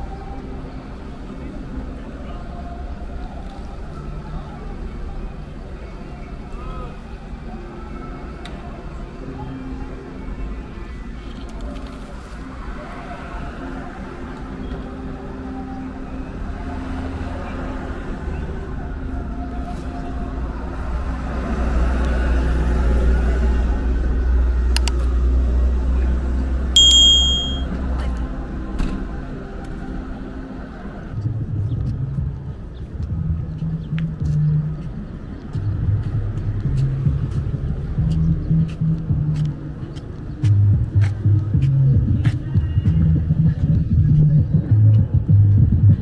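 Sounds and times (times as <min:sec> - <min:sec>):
high metallic ring: 0:26.8 - 0:27.7.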